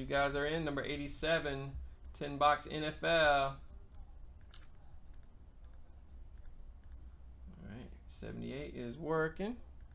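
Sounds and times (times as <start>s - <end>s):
computer mouse clicks: 3.2s - 7.1s.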